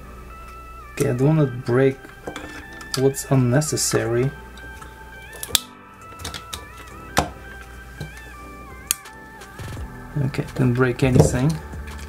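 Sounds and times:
light melodic background music: 0:00.0 - 0:12.0
side cutters snipping plastic: 0:03.9 - 0:07.4, 0:08.8 - 0:09.7.

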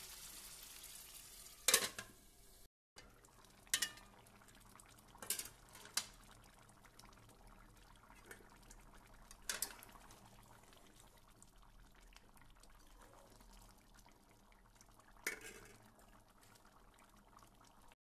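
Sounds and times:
metal utensil clattering against pot: 0:01.7 - 0:02.1, 0:03.8 - 0:04.1, 0:05.2 - 0:06.0, 0:09.4 - 0:09.8, 0:15.3 - 0:15.8.

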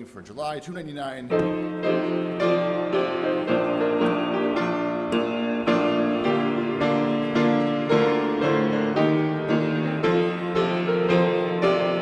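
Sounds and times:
piano playing hymn chords: 0:01.3 - 0:12.0.

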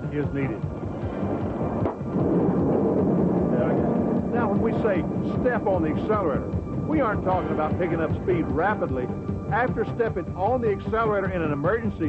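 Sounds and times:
car driving on blown tyre rumble: 0:00.7 - 0:07.6.

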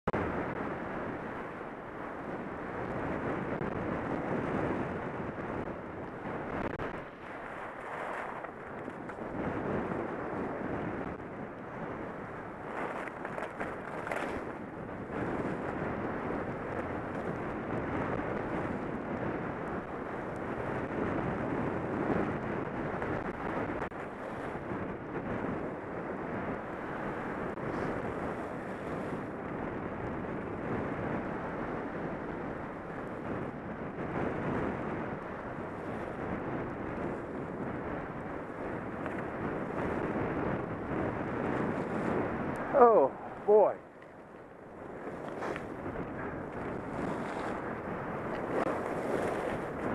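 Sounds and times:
wind buffeting microphone: 0:00.1 - 0:49.9.

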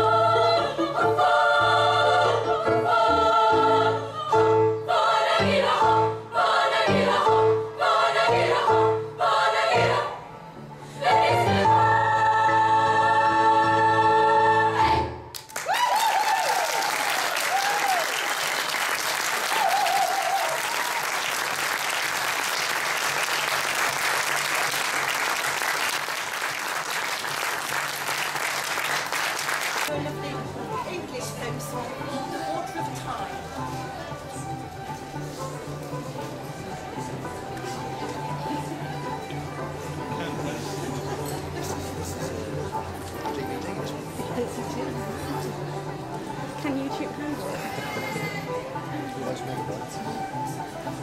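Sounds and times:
girls' choir singing in harmony: 0:00.0 - 0:15.2
audience applause: 0:15.4 - 0:29.9.

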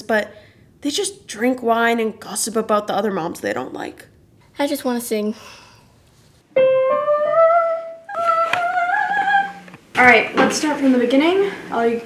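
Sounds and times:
person singing long notes: 0:06.6 - 0:09.8.

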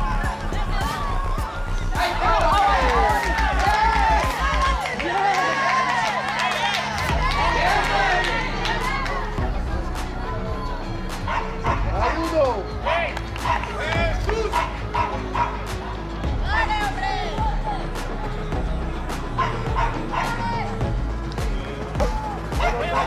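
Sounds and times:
voices shouting: 0:00.0 - 0:18.5, 0:19.2 - 0:20.9
music with steady beat: 0:06.8 - 0:23.0.

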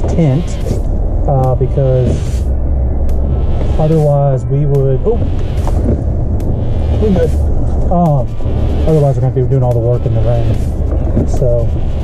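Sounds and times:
engine and road rumble: 0:00.0 - 0:12.0.

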